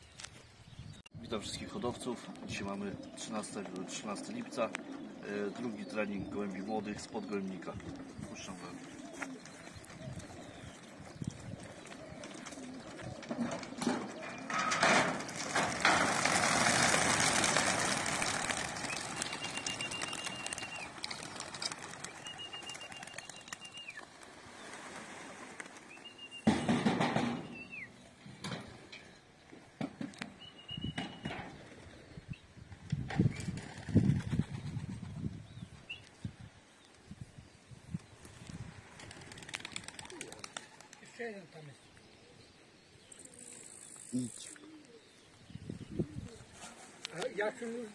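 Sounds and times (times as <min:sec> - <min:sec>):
pigeon wings flapping: 0:11.0 - 0:14.2, 0:14.8 - 0:26.0, 0:33.3 - 0:35.0, 0:38.9 - 0:41.2.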